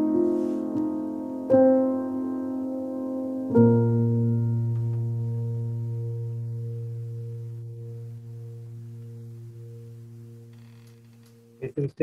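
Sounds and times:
piano chord ringing out: 0:00.0 - 0:11.6.

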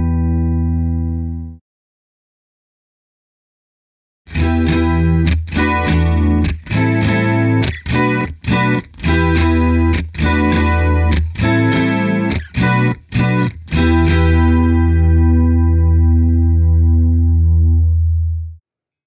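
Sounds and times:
electric guitar chords with chorus: 0:00.0 - 0:01.6, 0:04.3 - 0:18.6.

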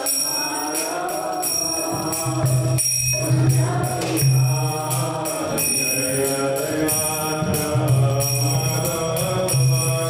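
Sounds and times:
group chanting: 0:00.0 - 0:10.0
hand cymbals struck in rhythm: 0:00.0 - 0:10.0.

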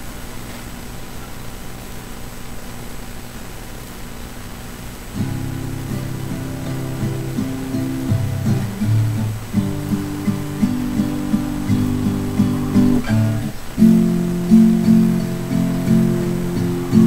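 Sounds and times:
faint room hiss: 0:00.0 - 0:17.0
acoustic guitar plucked chords: 0:05.2 - 0:17.0.

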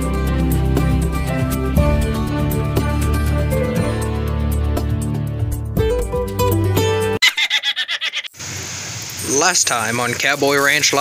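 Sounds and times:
person giggling: 0:07.2 - 0:08.3
steady hiss: 0:08.4 - 0:11.0.

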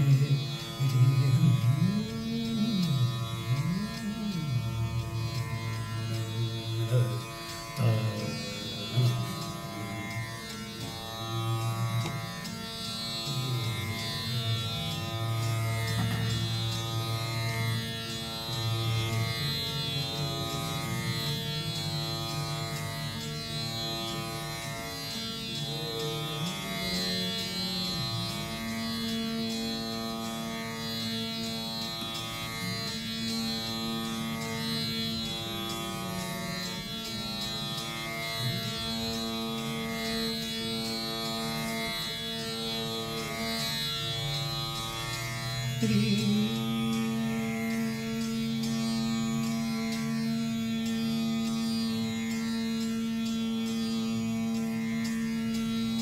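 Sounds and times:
steady drone: 0:00.0 - 0:56.0
veena playing long low notes: 0:00.0 - 0:56.0.

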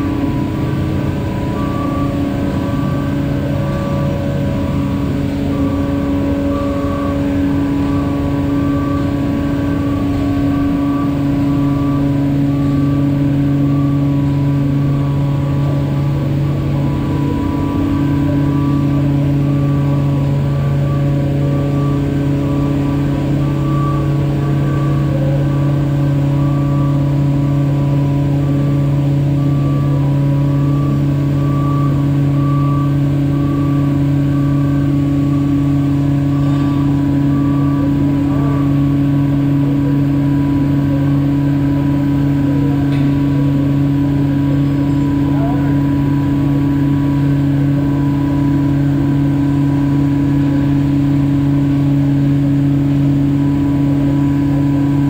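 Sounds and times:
motor droning steadily: 0:00.0 - 0:55.0.

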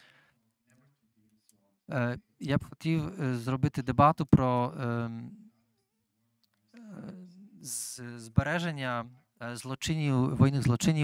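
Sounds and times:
man speaking into a microphone: 0:01.9 - 0:05.4, 0:06.8 - 0:11.0.

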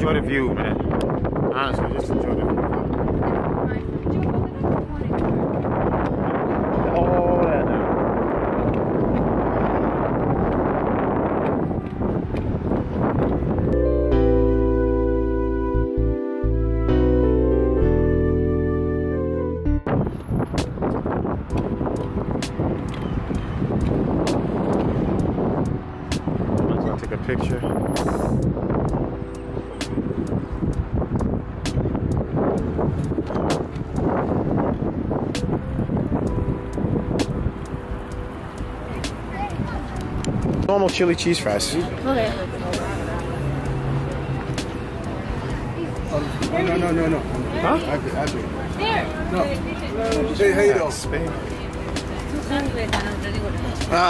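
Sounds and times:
wind buffeting microphone: 0:00.0 - 0:14.2, 0:19.8 - 0:54.0
traffic going by: 0:00.0 - 0:15.6, 0:19.8 - 0:54.0
music: 0:00.0 - 0:54.0.

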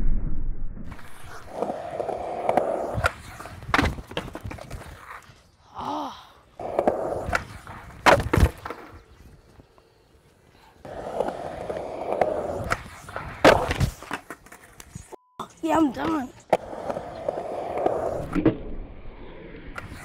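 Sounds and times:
skateboard wheels rolling on concrete: 0:00.9 - 0:20.0.

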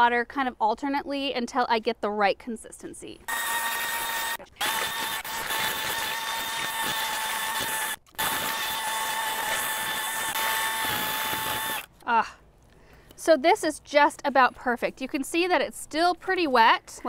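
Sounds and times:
drill motor whine: 0:03.3 - 0:11.9.

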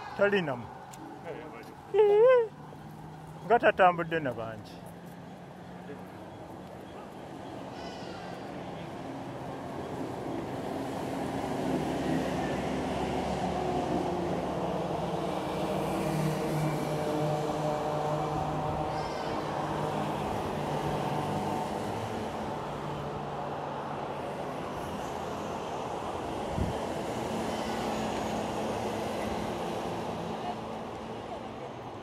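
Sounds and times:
vehicles driving past: 0:00.0 - 0:32.0.

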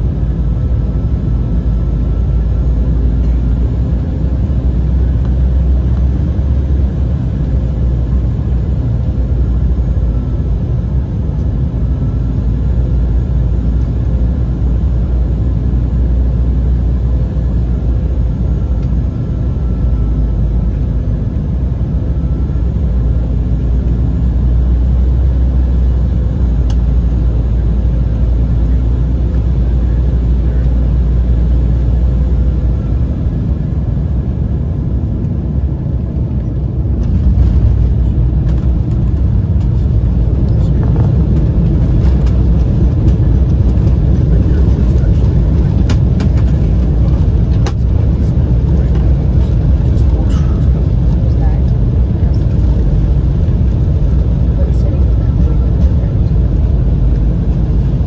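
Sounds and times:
jet engines and airflow rumble: 0:00.0 - 0:58.0.

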